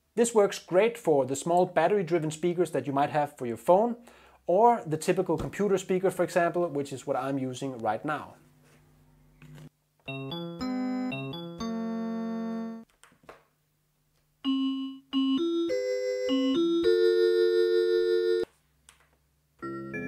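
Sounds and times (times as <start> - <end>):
synth keyboard notes and chords: 10.0 - 12.8, 14.4 - 18.4, 19.6 - 20.0.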